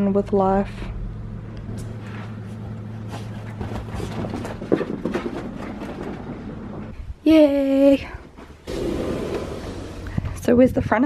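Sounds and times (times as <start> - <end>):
steady low hum: 0.0 - 11.0
dogs scuffling on sofa: 1.8 - 6.9.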